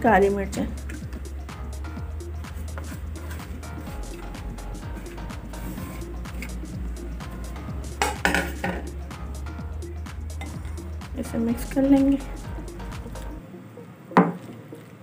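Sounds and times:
soft background music: 0.0 - 15.0
dishes clattering: 8.0 - 8.9, 10.4 - 10.9.

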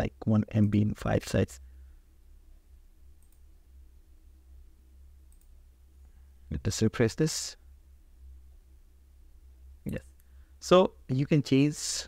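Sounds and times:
low steady hum: 0.0 - 12.0
faint computer mouse clicks: 3.2 - 3.5, 5.3 - 5.6.

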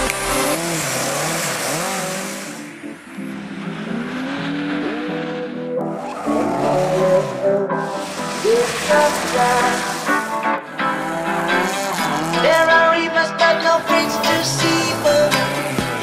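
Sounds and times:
background music: 0.0 - 16.0
rally car engines revving: 0.0 - 16.0
tyres skidding on dirt: 0.0 - 16.0.

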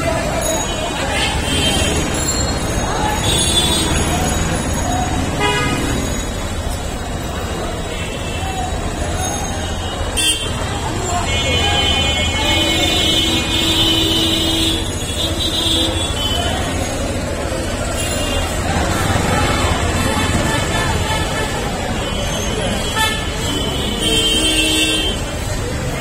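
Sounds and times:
people's voices: 0.0 - 26.0
vehicle engines running: 0.0 - 26.0
vehicle horn honking: 5.4 - 6.0, 10.1 - 10.6.

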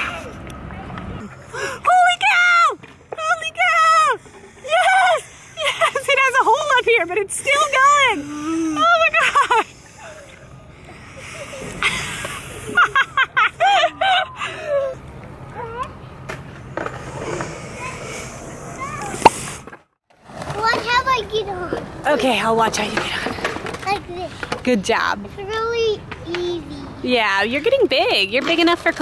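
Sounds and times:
woman laughing and calling out: 4.6 - 9.7, 11.4 - 15.0.

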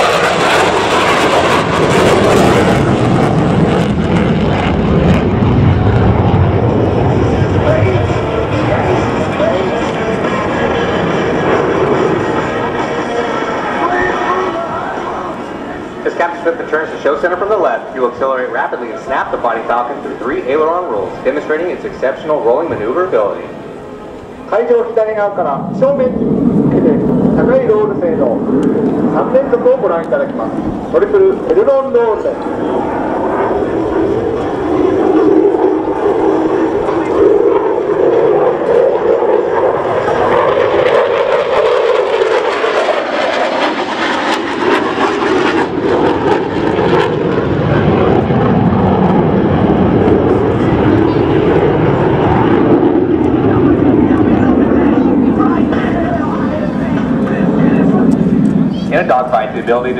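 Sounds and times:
jet engine roaring overhead: 0.0 - 59.9.

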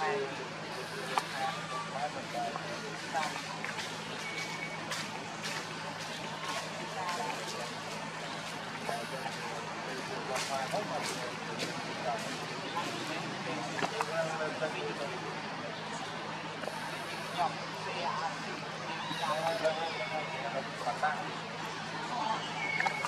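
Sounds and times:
people talking: 0.0 - 23.0
steady low hum: 0.0 - 23.0.

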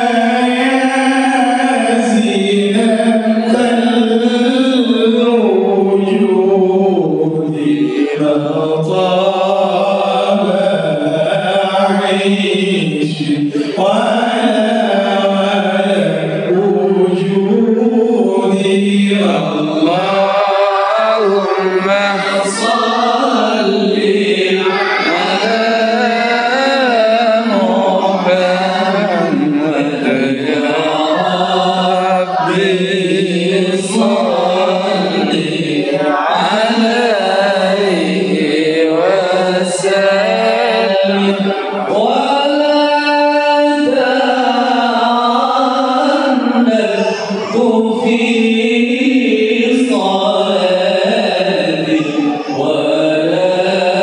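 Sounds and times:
man singing devotional chant: 0.0 - 54.0.

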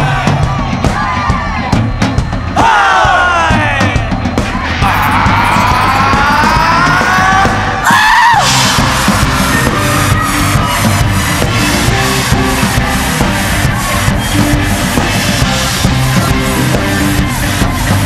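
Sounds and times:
drum kit driving beat: 0.0 - 18.0
live rock band: 0.0 - 18.0.

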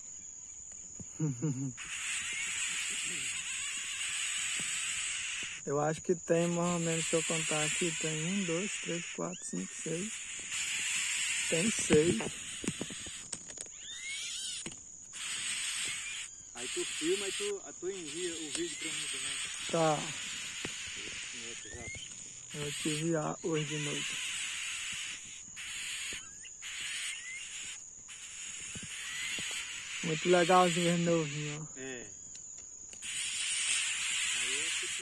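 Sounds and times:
insects whining: 0.0 - 35.0
nestlings begging with raspy hissing: 1.1 - 32.1, 33.0 - 35.0.

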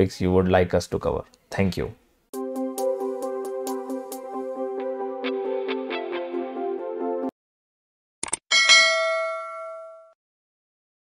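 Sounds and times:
notification bell ding: 8.5 - 10.2.

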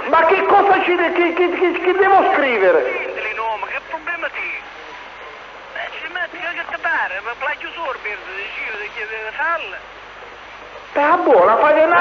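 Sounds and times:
voice over radio: 0.0 - 4.6, 5.7 - 9.8
steady radio hiss: 0.0 - 12.0.

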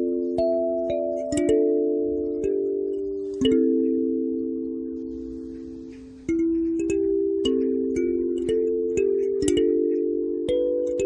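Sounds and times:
kalimba melody: 0.0 - 11.0.

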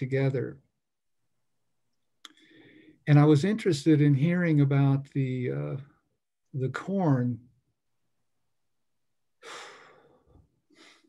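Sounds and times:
faint short breath: 9.4 - 11.0
person sighing: 9.4 - 11.0.

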